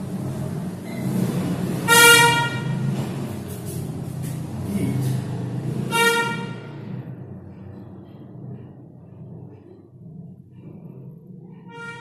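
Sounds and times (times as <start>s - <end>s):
low background rumble: 0.0s - 12.0s
vehicle horn blasts: 1.8s - 2.9s, 5.9s - 6.7s, 11.7s - 12.0s.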